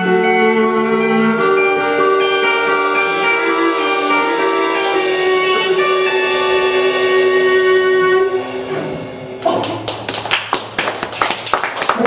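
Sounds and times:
rock band final chord ringing: 0.0 - 9.4
audience clapping: 9.4 - 12.0.

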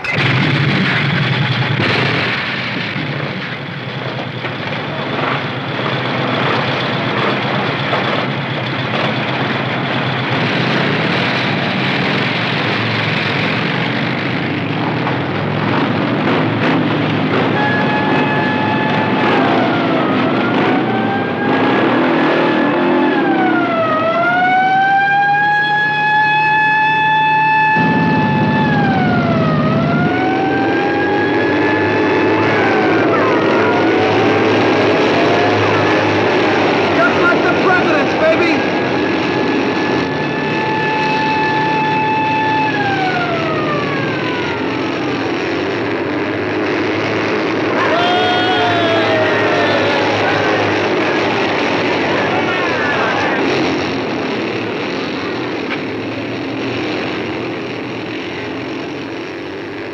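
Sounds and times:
motorcycle engines running: 0.0 - 59.9
police siren wailing: 4.0 - 59.9.

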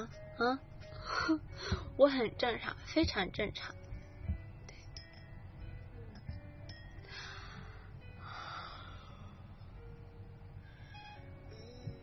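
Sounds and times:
faint background music: 0.0 - 12.0
woman breathing: 0.8 - 2.0, 7.0 - 10.0, 10.6 - 11.4.

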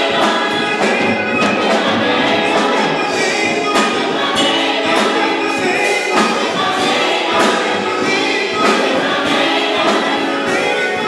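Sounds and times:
choir singing in harmony: 0.0 - 11.0
church band playing: 0.0 - 11.0
sharp percussion hits: 0.0 - 11.0.

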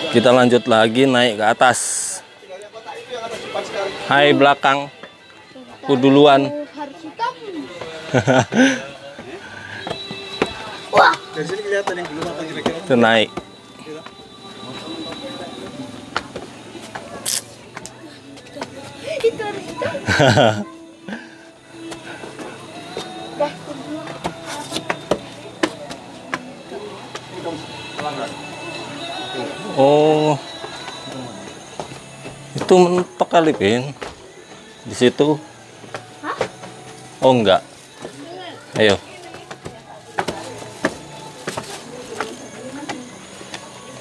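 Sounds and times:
faint voices: 0.0 - 44.0
people talking: 5.6 - 21.0, 22.4 - 34.0, 37.2 - 44.0
footsteps on concrete stairs: 7.6 - 20.5, 21.7 - 44.0.

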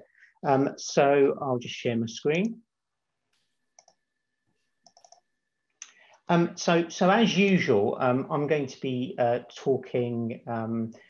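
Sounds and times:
computer mouse clicks: 3.3 - 4.0, 4.8 - 5.3.

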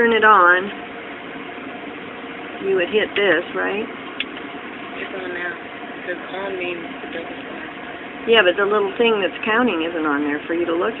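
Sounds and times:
steady machine hum: 0.0 - 11.0.

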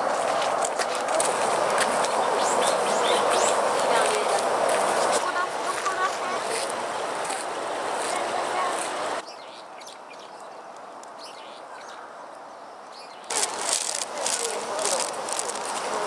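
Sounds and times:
murmur of distant voices: 0.0 - 9.2, 13.3 - 16.0
small birds chirping: 2.0 - 4.3, 8.0 - 16.0.

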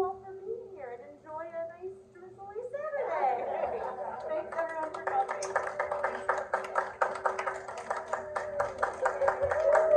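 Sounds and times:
small group clapping: 3.8 - 9.9.

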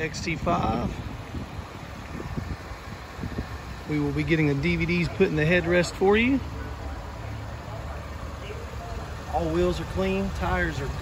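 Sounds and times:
wind buffeting microphone: 0.0 - 5.2.

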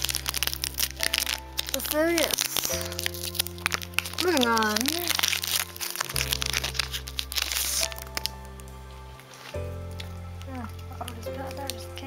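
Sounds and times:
background music with held notes: 0.0 - 12.0
foil wrapper crinkling and tearing: 0.0 - 12.0.

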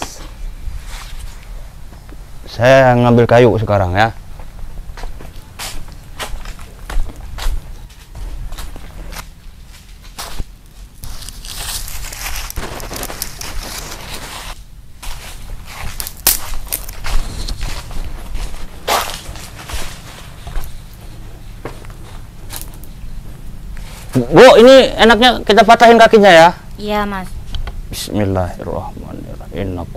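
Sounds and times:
shoes shuffling on tiled floor: 4.4 - 22.4.

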